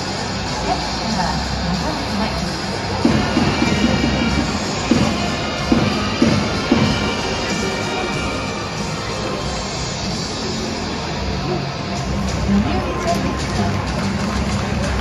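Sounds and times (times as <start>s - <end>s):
crowd noise: 0.0s - 15.0s
music over stadium speakers: 0.0s - 15.0s
sharp hits: 3.0s - 10.5s.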